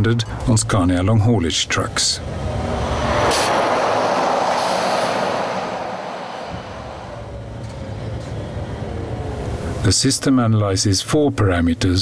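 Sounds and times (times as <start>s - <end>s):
road and tyre noise: 0.0s - 9.9s
truck engine hum: 1.8s - 9.8s
broad rushing noise: 2.1s - 9.6s.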